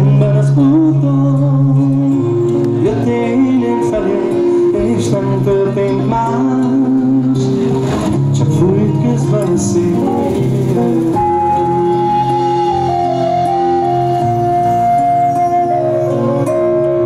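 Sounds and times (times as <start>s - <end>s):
acoustic guitar: 0.0s - 17.0s
keyboard accompaniment: 0.0s - 17.0s
live band music: 0.0s - 17.0s
long held high note: 10.0s - 17.0s.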